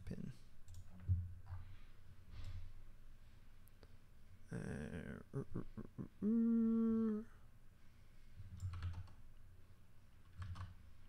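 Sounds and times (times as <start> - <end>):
man humming: 4.5 - 7.4
computer keyboard clicks: 8.6 - 9.2, 10.2 - 10.8.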